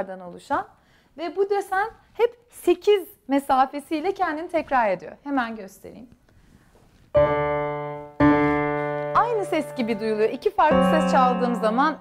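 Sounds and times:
piano note ringing: 7.2s - 12.0s.

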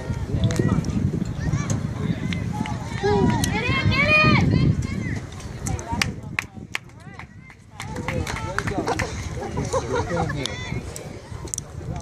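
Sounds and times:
spectators talking and calling: 0.0s - 12.0s.

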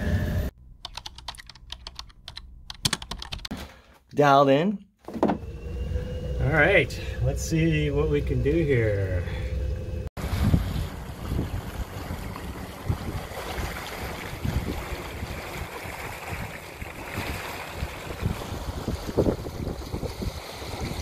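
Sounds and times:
boat wake rushing and splashing: 5.3s - 21.0s
wind buffeting microphone: 6.9s - 21.0s.

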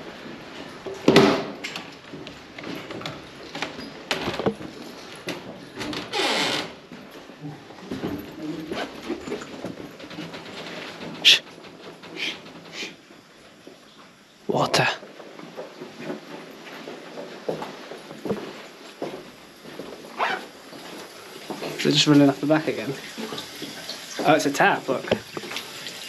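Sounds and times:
footsteps in corridor: 15.0s - 21.7s.

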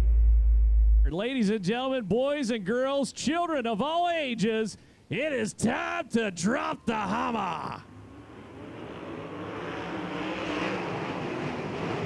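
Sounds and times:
race car engines at full throttle: 7.8s - 12.0s.

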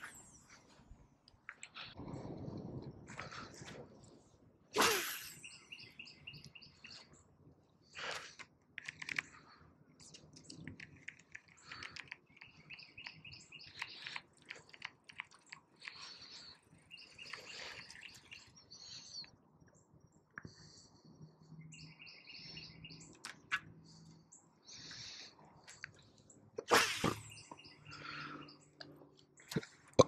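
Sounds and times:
small birds chirping: 3.8s - 30.0s.

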